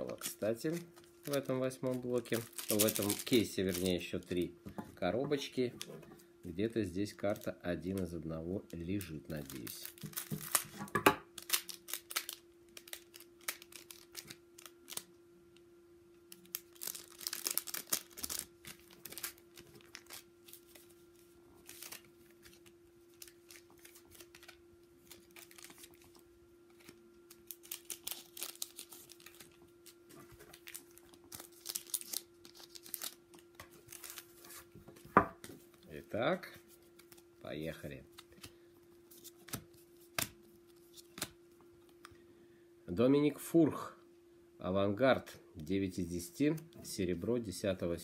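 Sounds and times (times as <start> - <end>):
cards rustling: 0.0 - 4.4, 8.8 - 10.8, 11.4 - 15.0, 16.4 - 34.7, 38.1 - 41.4
foil wrappers crinkling: 0.0 - 4.5, 6.9 - 15.1, 16.3 - 34.7
faint steady hum: 0.0 - 48.0.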